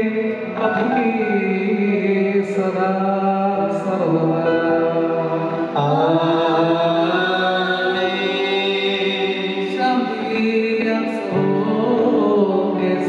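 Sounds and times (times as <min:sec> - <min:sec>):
slow liturgical chant: 0:00.0 - 0:13.0.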